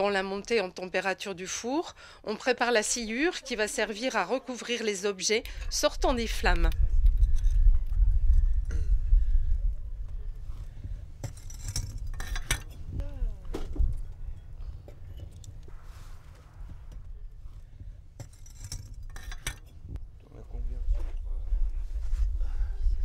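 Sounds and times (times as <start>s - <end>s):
steady low rumble: 5.4s - 23.0s
ceramic pieces clinking: 11.2s - 12.9s, 18.2s - 19.8s.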